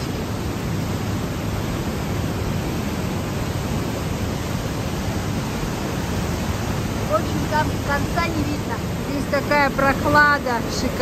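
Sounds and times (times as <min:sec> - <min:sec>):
water rushing in a gorge: 0:00.0 - 0:11.0.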